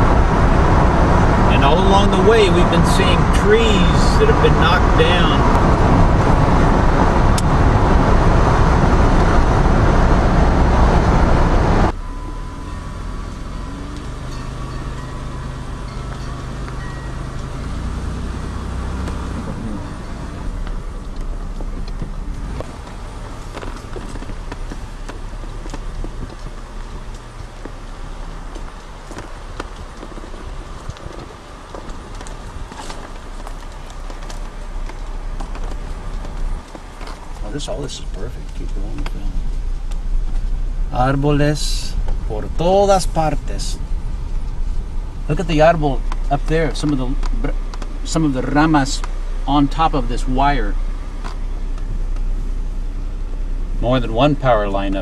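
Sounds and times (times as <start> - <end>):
car road and wind noise: 0.0 - 55.0
low hum of car driving slowly: 0.0 - 55.0.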